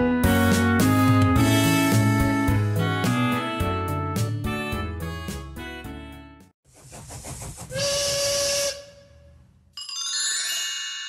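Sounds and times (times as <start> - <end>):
steam locomotive chuffs: 6.7 - 9.0
train whistle blast: 7.7 - 9.4.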